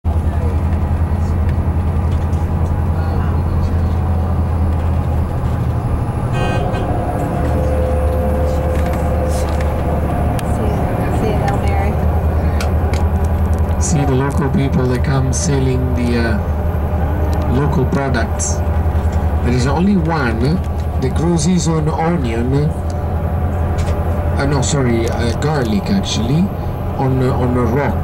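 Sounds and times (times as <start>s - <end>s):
vehicle engine drone inside cabin: 0.0s - 28.0s
horn toot: 6.3s - 9.7s.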